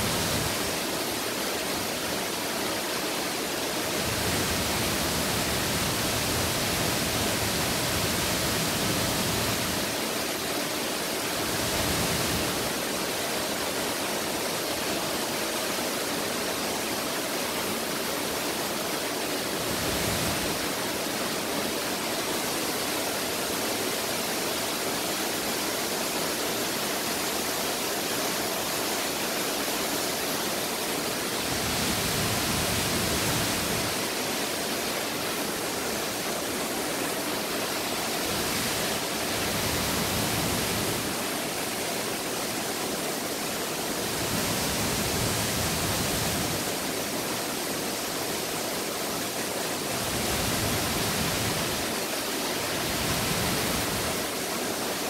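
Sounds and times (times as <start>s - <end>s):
waterfall rushing: 0.0s - 55.0s.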